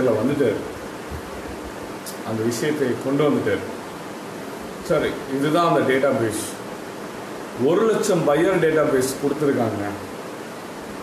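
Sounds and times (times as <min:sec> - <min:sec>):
man speaking: 0:00.0 - 0:00.8, 0:02.1 - 0:03.8, 0:04.8 - 0:06.6, 0:07.6 - 0:10.1
faint steady hiss: 0:00.0 - 0:11.0.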